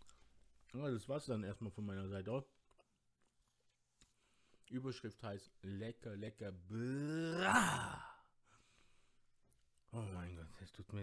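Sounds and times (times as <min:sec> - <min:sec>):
man sighing: 0:06.8 - 0:08.3.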